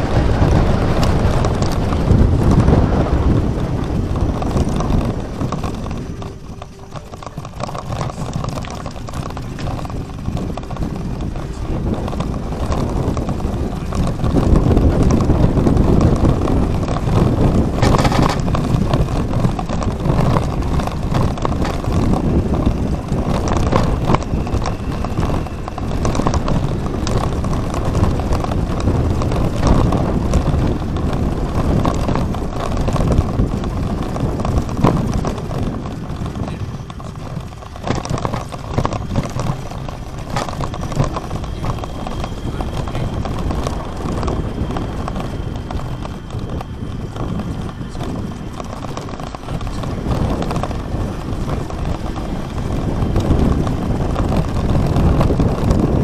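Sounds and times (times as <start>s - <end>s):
bike knocks and rattles: 0.0s - 56.0s
wind rushing over microphone: 0.0s - 56.0s.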